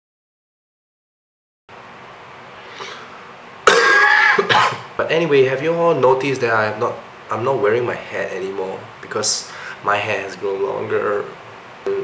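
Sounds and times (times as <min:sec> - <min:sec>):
man clearing his throat: 0:03.6 - 0:04.9
man coughing: 0:03.6 - 0:04.9.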